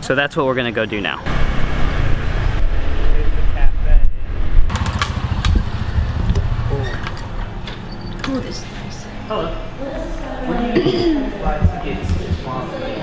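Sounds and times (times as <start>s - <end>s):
street traffic rumble: 0.0s - 12.7s.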